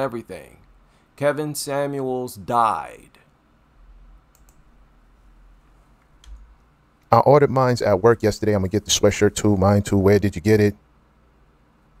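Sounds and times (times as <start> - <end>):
low steady hum: 0.0 - 12.0
faint mouse clicks: 4.3 - 4.6.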